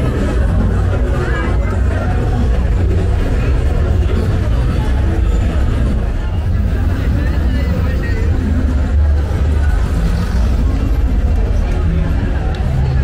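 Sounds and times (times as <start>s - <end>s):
crowd talking: 0.0s - 13.0s
deep traffic rumble: 0.0s - 13.0s.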